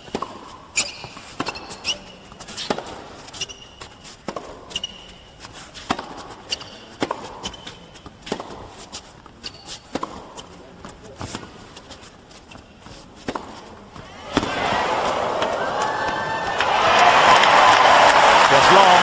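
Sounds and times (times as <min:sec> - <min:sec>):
racket striking tennis ball: 0:00.0 - 0:10.5, 0:12.8 - 0:17.4
sneakers squeaking on court: 0:00.0 - 0:15.9.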